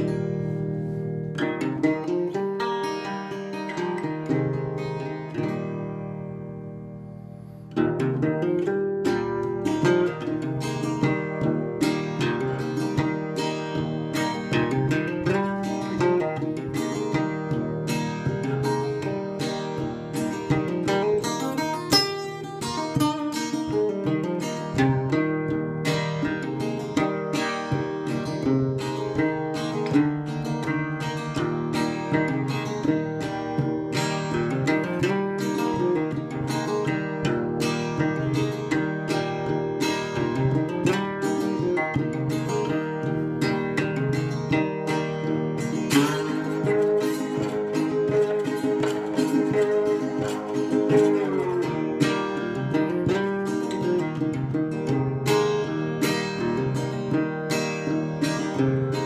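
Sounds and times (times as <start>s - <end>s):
fingerpicked slide guitar: 0.0s - 59.0s.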